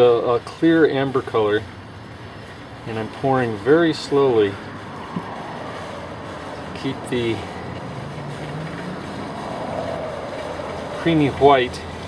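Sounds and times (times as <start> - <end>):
oil trickling through funnel: 0.0 - 12.0.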